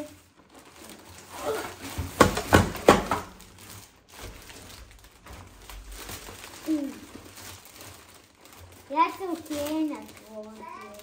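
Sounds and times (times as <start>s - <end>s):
plastic bag rustling: 0.0s - 11.0s
knocks in kitchen cabinet: 2.0s - 3.3s.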